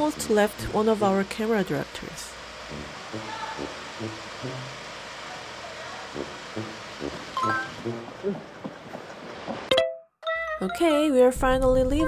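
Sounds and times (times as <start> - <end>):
steady background noise: 0.0 - 9.7.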